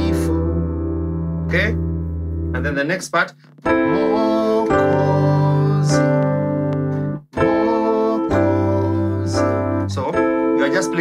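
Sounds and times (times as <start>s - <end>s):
piano playing slow chords: 0.0s - 11.0s.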